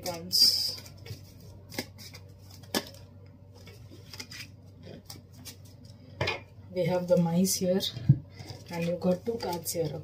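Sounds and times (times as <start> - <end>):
cards tapping and rustling: 0.0 - 5.9
low steady hum: 0.0 - 10.0.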